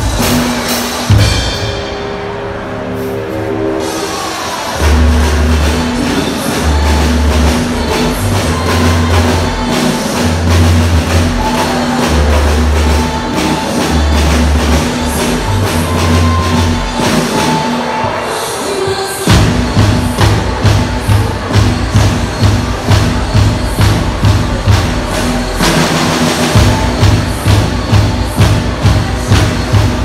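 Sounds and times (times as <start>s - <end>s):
drum kit playing: 0.0s - 18.2s, 19.3s - 30.0s
heavy bass notes: 0.0s - 18.3s, 19.3s - 30.0s.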